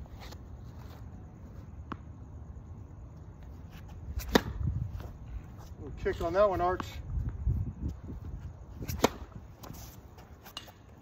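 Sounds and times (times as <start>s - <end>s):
tennis racket hitting ball: 4.2s - 4.6s, 8.9s - 9.8s.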